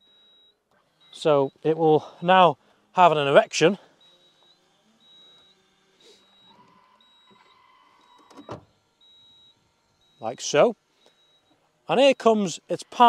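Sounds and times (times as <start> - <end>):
faint high beeping tone: 0.0 - 8.3, 9.0 - 13.0
tow bar motor whirring: 0.0 - 13.0.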